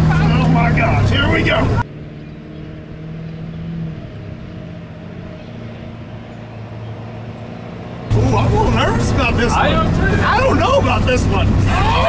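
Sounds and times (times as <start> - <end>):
distant diesel truck engine: 0.0 - 12.0.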